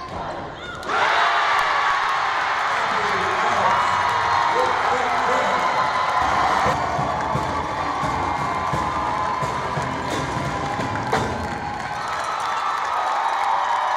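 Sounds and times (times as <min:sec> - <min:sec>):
crowd cheering: 0:00.0 - 0:13.9
music: 0:06.2 - 0:12.2.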